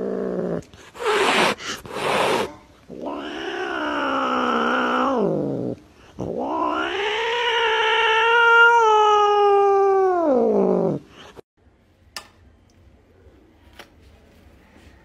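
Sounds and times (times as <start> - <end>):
cat yowling: 2.2 - 11.0.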